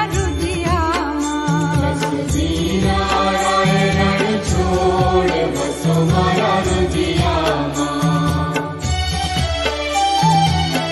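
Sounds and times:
chanted devotional singing: 0:00.0 - 0:09.4.

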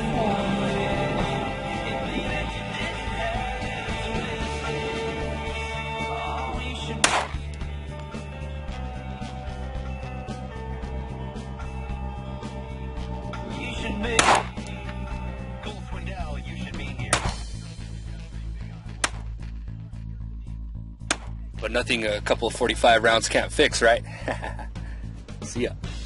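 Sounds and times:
guitar-led background music: 0:00.0 - 0:19.7, 0:20.9 - 0:26.0
pistol shot: 0:07.0 - 0:07.4, 0:14.2 - 0:14.5.

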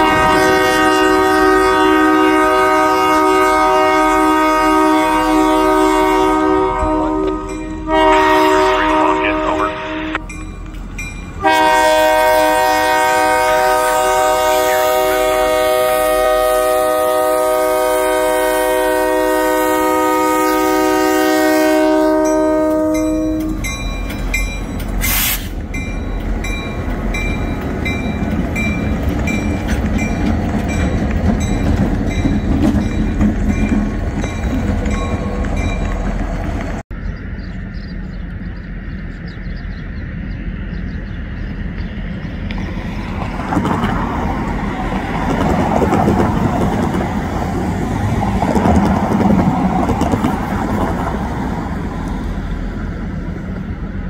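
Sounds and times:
locomotive air horn blasts: 0:00.0 - 0:10.3, 0:11.4 - 0:23.7, 0:25.0 - 0:25.6
locomotive engines rumbling: 0:00.0 - 0:54.0
train wheels clattering: 0:22.3 - 0:36.8, 0:42.5 - 0:51.4
air hiss: 0:25.0 - 0:25.6.

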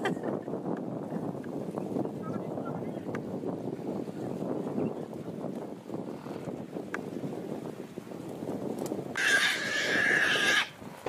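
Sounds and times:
wild boar squealing: 0:09.2 - 0:10.8.

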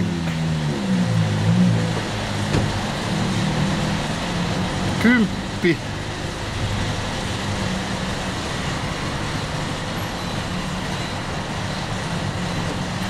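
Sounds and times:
traffic rumble: 0:00.0 - 0:13.0.

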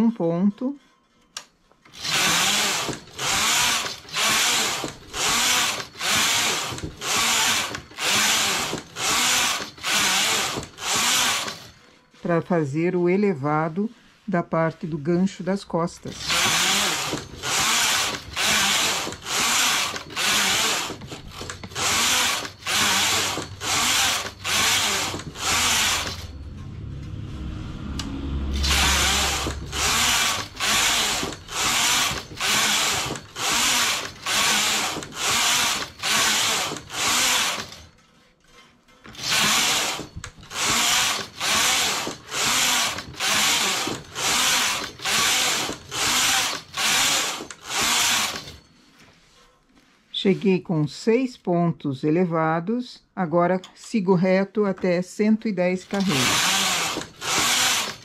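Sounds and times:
knitting machine carriage sliding: 0:01.2 - 0:12.3, 0:16.0 - 0:26.4, 0:28.6 - 0:48.8, 0:55.8 - 0:58.0
low hum: 0:23.4 - 0:32.4.

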